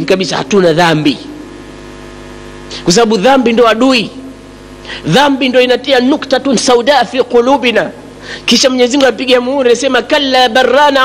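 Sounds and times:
electrical hum: 0:00.0 - 0:11.0
man talking: 0:02.7 - 0:04.2.

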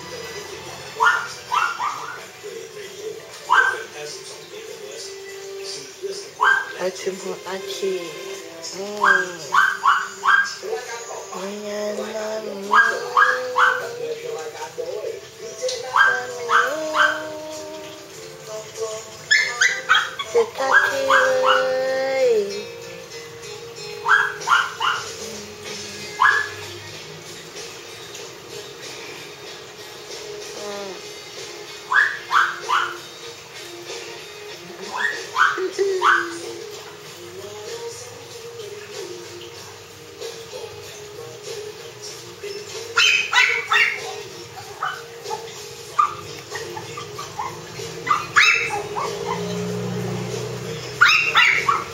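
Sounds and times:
background music: 0:00.0 - 0:51.9
small dog yapping: 0:01.0 - 0:02.3, 0:06.4 - 0:06.8, 0:09.0 - 0:10.6, 0:12.7 - 0:13.9, 0:15.9 - 0:17.3, 0:19.3 - 0:21.8, 0:24.0 - 0:25.2, 0:26.2 - 0:26.6, 0:31.9 - 0:33.0, 0:34.8 - 0:36.6, 0:43.0 - 0:49.7, 0:51.0 - 0:51.9.

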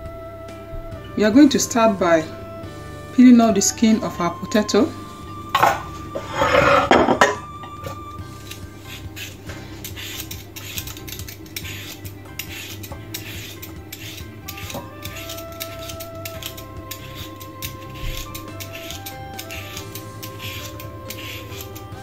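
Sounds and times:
faint background music: 0:00.0 - 0:22.0
peeler scraping potato: 0:05.6 - 0:22.0.

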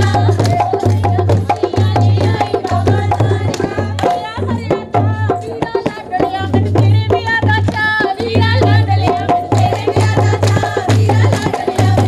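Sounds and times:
hand drum beating: 0:00.0 - 0:12.0
women clapping in rhythm: 0:00.0 - 0:12.0
women singing: 0:00.0 - 0:12.0.

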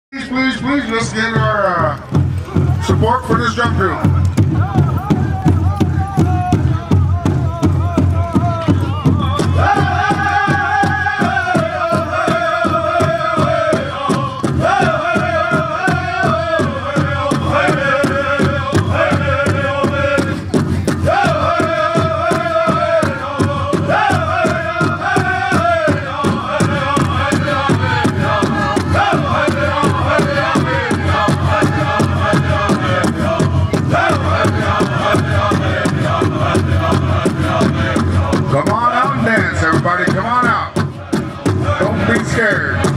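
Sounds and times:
hand drum beat: 0:03.7 - 0:42.9
group singing in unison: 0:05.1 - 0:39.7, 0:40.5 - 0:42.9.

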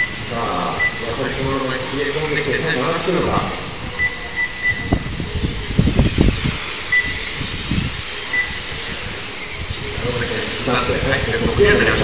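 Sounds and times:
rc car motors and tyres whirring: 0:00.0 - 0:12.0.

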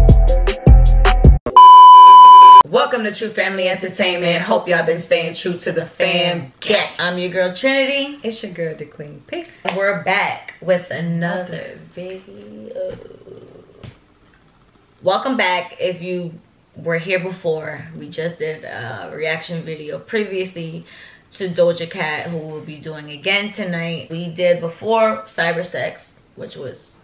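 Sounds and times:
music beat with bass: 0:00.0 - 0:01.5
electronic beep: 0:01.5 - 0:02.6
person's low rough vocal sound: 0:12.3 - 0:14.0.

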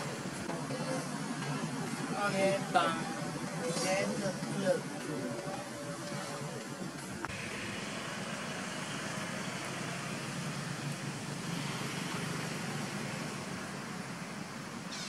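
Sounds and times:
outdoor rumble and hiss: 0:00.0 - 0:15.0.

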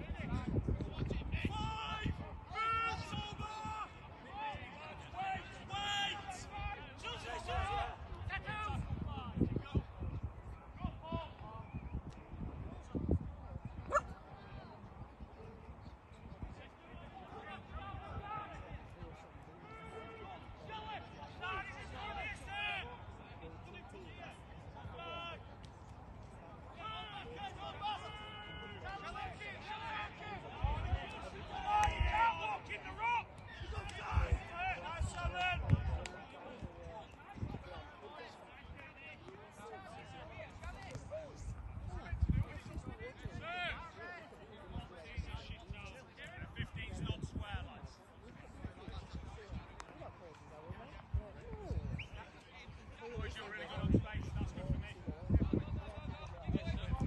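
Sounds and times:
people shouting and calling: 0:01.4 - 0:04.0, 0:05.2 - 0:08.8.

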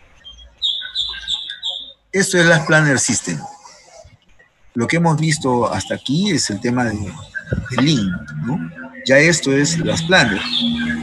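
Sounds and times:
songbird chirping: 0:00.0 - 0:11.0.

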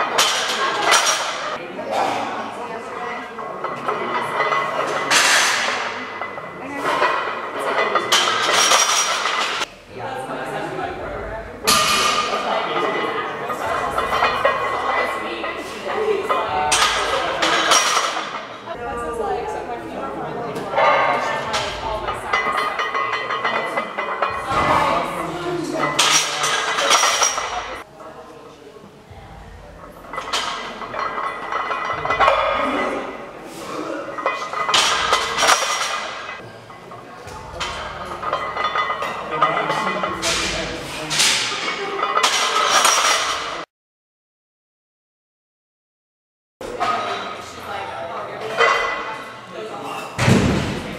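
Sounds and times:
barbell plates clinking: 0:20.7 - 0:27.8, 0:29.7 - 0:33.4, 0:34.0 - 0:43.6.

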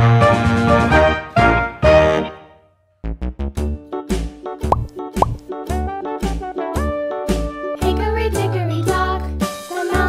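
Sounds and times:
upbeat children's music: 0:04.0 - 0:10.0.

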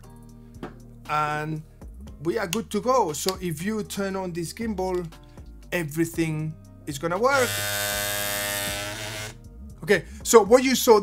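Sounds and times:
gimbal motors buzzing: 0:07.3 - 0:09.4.

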